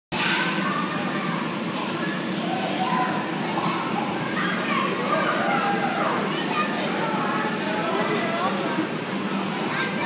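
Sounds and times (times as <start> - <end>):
children shouting and chattering: 0.2 - 10.0.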